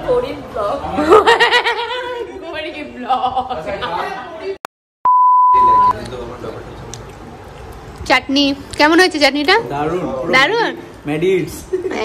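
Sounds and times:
test tone beep: 5.1s - 6.0s.

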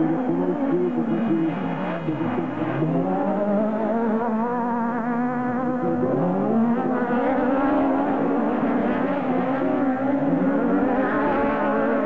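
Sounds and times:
racing buggy engines revving: 0.0s - 12.0s.

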